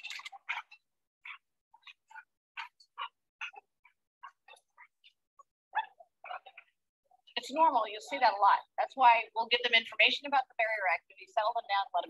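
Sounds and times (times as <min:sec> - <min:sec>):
dogs barking and yelping: 0:00.0 - 0:06.8.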